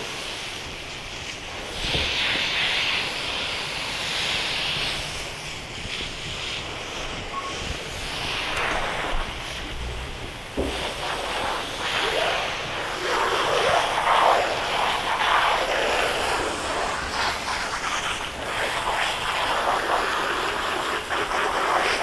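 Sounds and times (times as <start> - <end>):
hose spray hissing and splashing: 0.0 - 22.0
water running onto wet floor: 0.0 - 22.0.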